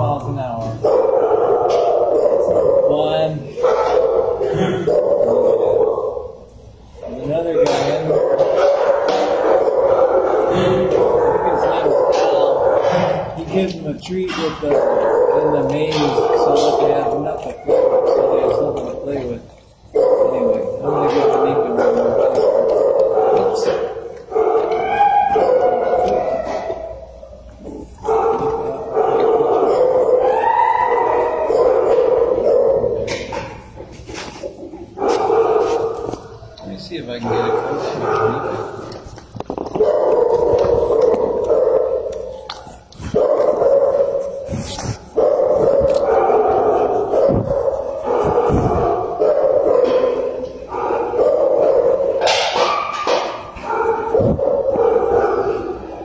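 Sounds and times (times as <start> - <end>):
dogs barking: 0.0 - 56.0
dogs whining and howling: 0.0 - 56.0.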